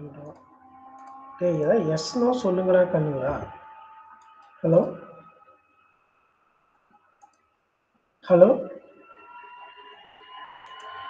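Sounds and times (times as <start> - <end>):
high electronic whine: 0.0 - 6.1.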